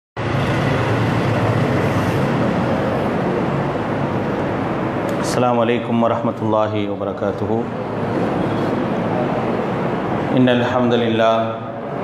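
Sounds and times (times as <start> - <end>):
loud steady noise: 0.2 - 12.0.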